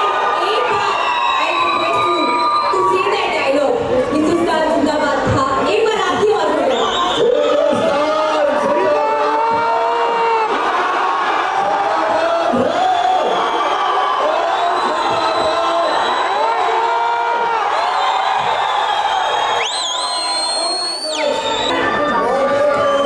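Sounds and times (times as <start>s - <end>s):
high whistle: 6.7s - 7.4s, 14.5s - 16.5s, 17.9s - 22.0s, 22.7s - 23.0s.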